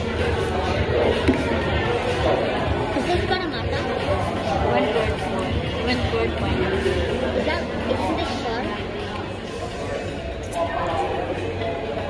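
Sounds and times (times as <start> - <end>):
babble of many people talking: 0.0 - 12.0.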